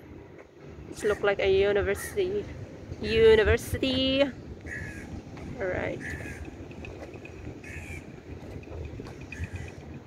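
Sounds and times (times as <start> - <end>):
low outdoor rumble: 0.0 - 10.0
crow cawing: 4.6 - 5.2, 6.0 - 6.6, 7.6 - 8.1.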